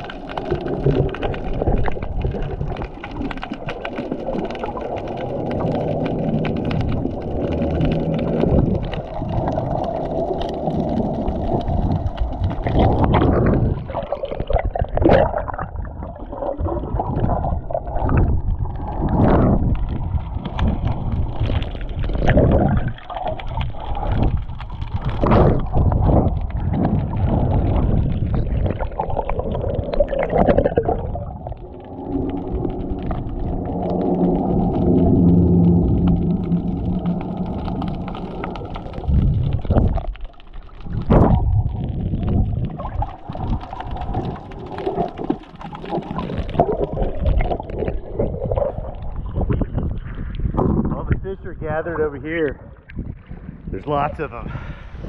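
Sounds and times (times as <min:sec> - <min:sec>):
muffled underwater water rushing: 0:00.0 - 0:55.0
droning hum: 0:30.8 - 0:39.8.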